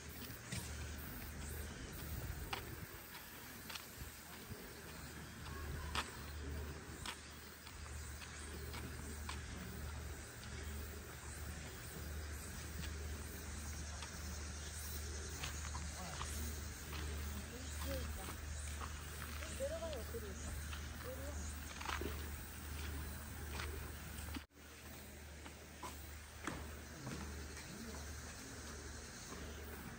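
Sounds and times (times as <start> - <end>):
footsteps on gravel: 0.0 - 27.5
distant voices calling and talking: 0.0 - 29.9.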